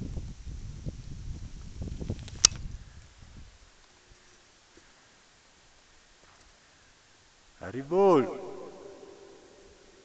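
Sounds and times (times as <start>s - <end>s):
wind rumble on microphone: 0.0s - 3.7s
sharp click: 2.2s - 2.6s.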